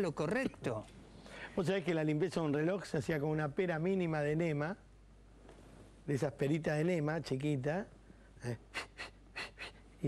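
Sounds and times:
man imitating air puffs: 8.6s - 9.9s.

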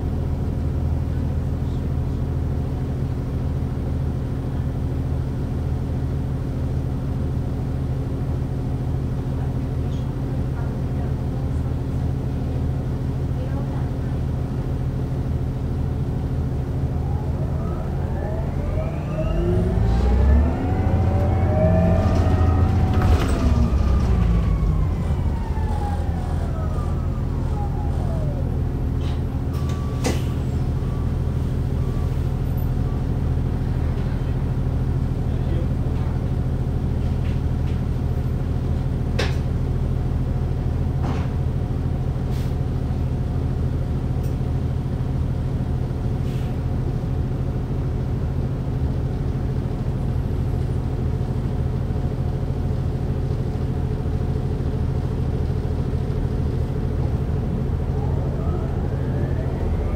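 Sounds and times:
bus drivetrain drone: 0.0s - 59.9s
electric drive whine: 16.5s - 28.9s.

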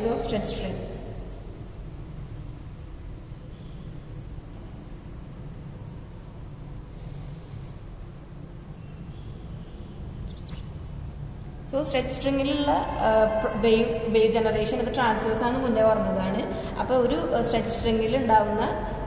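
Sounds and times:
high-pitched insect trill: 0.0s - 19.0s
low background hum: 0.0s - 19.0s.

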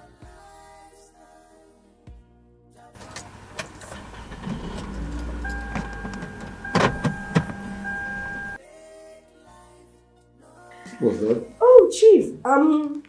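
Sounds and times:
car engine rumbling: 3.0s - 8.6s
steady electronic tone: 4.8s - 8.6s.

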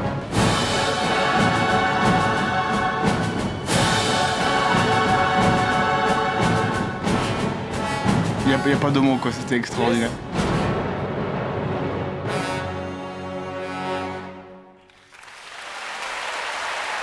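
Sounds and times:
orchestra accented hits: 0.0s - 14.3s
loud orchestral music: 0.0s - 14.8s.

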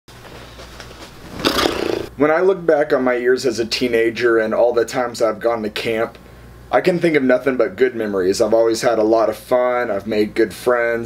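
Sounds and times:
man dropping onto sofa: 1.0s - 2.1s.

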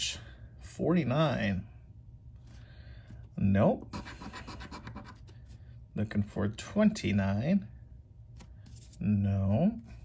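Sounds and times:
coin scratching a ticket: 3.9s - 5.2s.

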